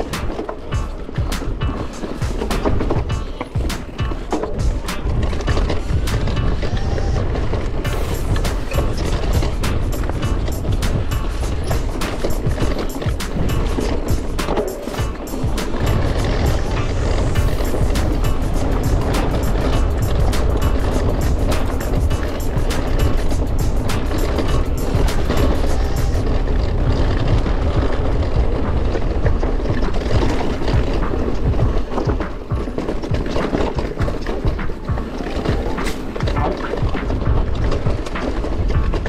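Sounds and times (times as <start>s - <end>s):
bike rattling: 0.0s - 39.0s
music: 0.0s - 39.0s
tyres rolling over stone: 0.0s - 39.0s
wind rumbling on microphone: 0.0s - 39.0s.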